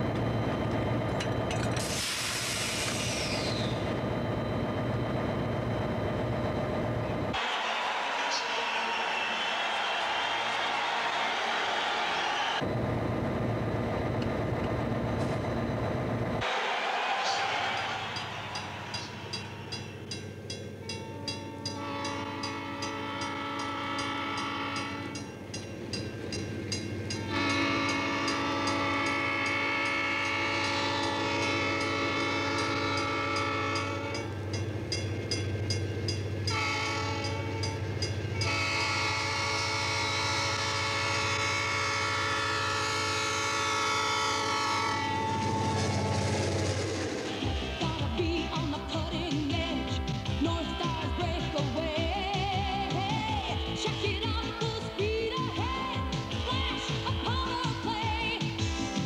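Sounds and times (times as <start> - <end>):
locomotive air horn blasts: 21.6 - 25.3, 27.2 - 34.4, 36.5 - 46.1.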